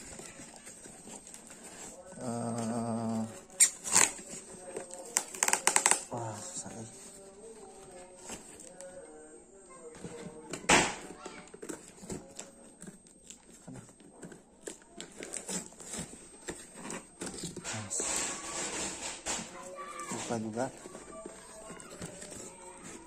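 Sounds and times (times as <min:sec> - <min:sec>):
scissors cutting cardboard: 0:00.0 - 0:06.2, 0:10.1 - 0:23.0
cardboard tearing: 0:00.0 - 0:08.8, 0:10.1 - 0:23.0.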